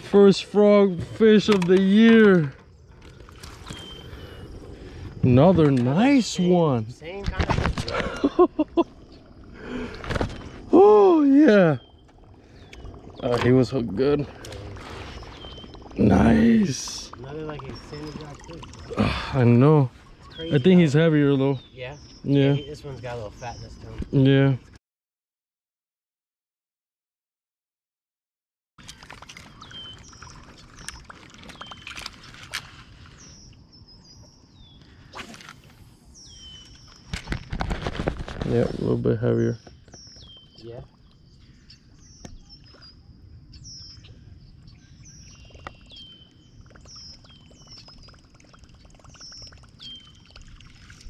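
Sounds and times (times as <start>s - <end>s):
man laughing: 7.9s - 9.0s.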